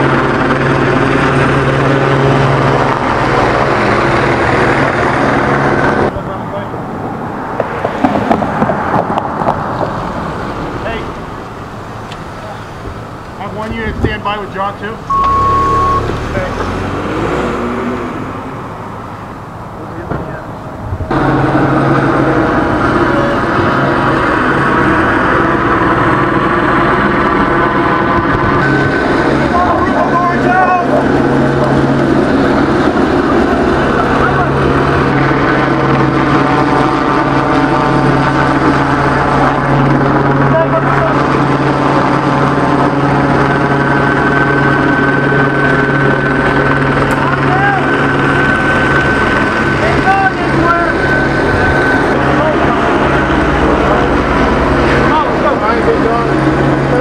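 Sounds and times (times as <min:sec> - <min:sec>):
engine drone: 0:00.0 - 0:57.0.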